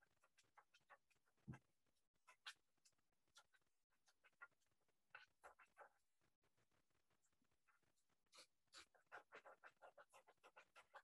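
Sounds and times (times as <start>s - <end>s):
paintbrush scrubbing on canvas: 0.0s - 6.5s, 7.6s - 11.0s.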